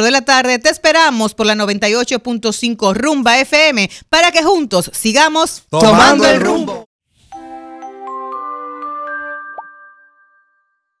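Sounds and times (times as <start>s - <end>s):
bright chime-like jingle: 7.3s - 11.0s.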